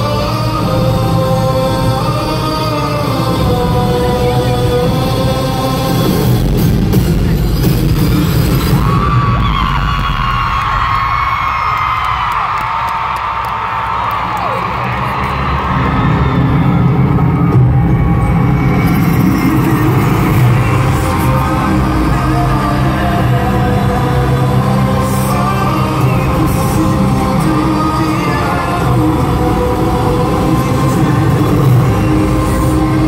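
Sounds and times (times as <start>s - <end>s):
loud live pop music: 0.0s - 33.0s
crowd screaming and whooping: 5.8s - 33.0s.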